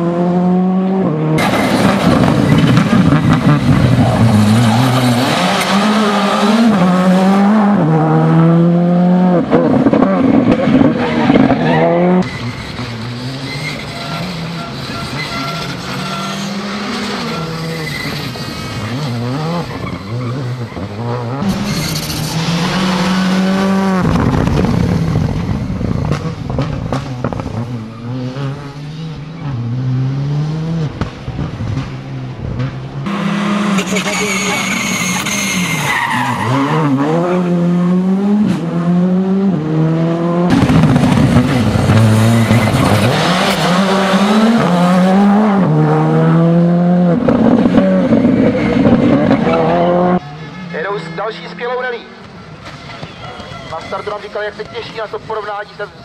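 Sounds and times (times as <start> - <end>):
rally car engine revving: 0.0 - 52.8.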